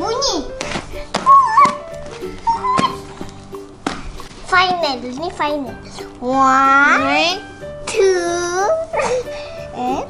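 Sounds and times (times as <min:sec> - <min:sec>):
background music: 0:00.0 - 0:10.0
sharp slaps: 0:00.6 - 0:04.3
children squealing and exclaiming: 0:01.2 - 0:03.2.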